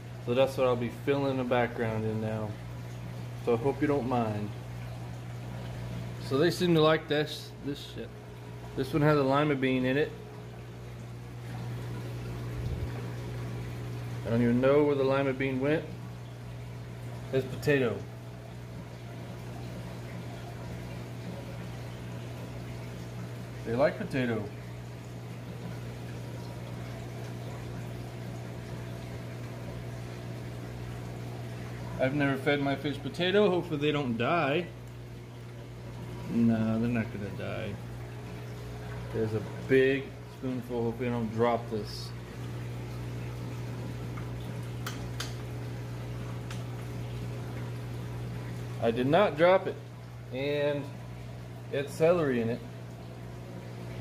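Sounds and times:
low equipment hum: 0.0s - 54.0s
bubbling water fizz: 15.4s - 54.0s.

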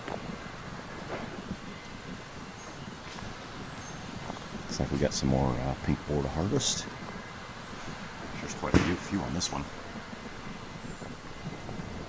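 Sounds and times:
faint rustles: 0.0s - 12.0s.

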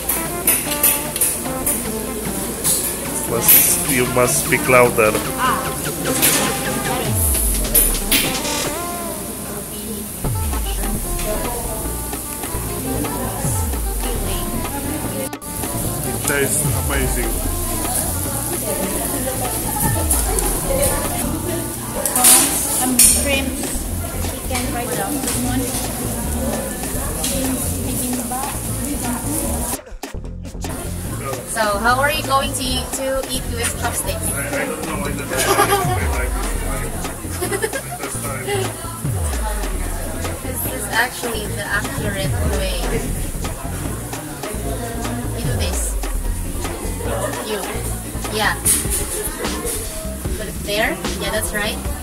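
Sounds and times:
music playing: 0.0s - 52.0s
voices in background: 0.0s - 52.0s
low falling tone: 7.0s - 8.4s
meat sizzling on a grill: 15.6s - 29.7s.

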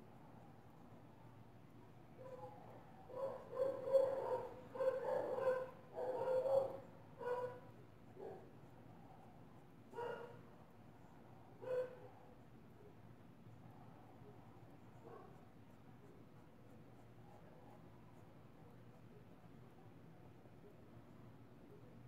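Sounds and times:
dog barking and whining: 2.2s - 7.6s.

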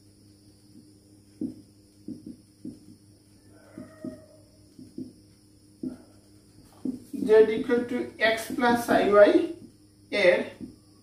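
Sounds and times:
marker writing on whiteboard: 1.3s - 3.0s, 3.6s - 8.9s
faint drawn-out pitched call: 3.3s - 5.1s.

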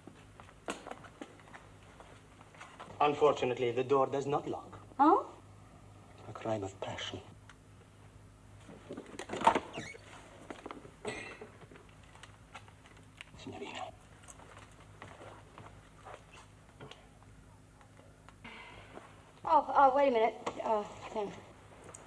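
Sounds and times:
faint low hum: 0.0s - 22.0s
footsteps: 14.2s - 16.9s.

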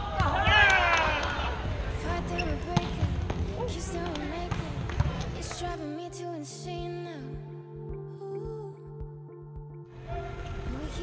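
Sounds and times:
soft background music: 1.6s - 11.0s.

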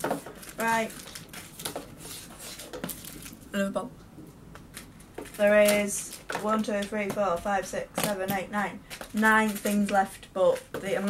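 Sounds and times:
packets rustling and knocking: 0.0s - 3.5s, 4.6s - 11.0s.

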